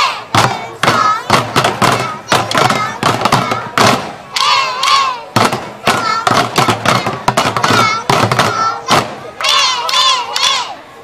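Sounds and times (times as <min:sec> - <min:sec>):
children shouting together: 0:00.0 - 0:11.0
strikes on plastic bucket drums: 0:00.3 - 0:04.2, 0:04.8 - 0:09.3.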